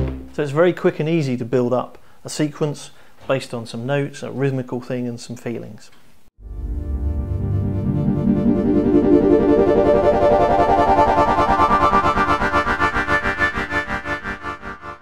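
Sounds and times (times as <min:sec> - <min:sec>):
pulsing synthesizer chord: 0:06.4 - 0:15.0.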